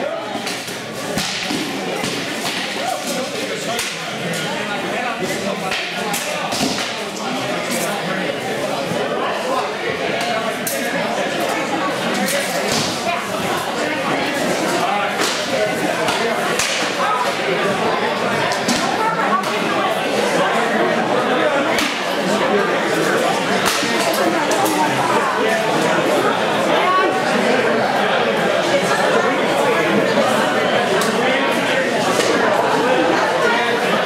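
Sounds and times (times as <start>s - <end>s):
crowd chatter: 0.0s - 34.0s
din of large hall: 0.0s - 34.0s.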